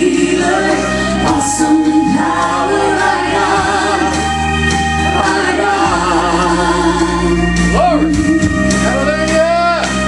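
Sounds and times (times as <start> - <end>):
women singing gospel song: 0.0 - 8.6.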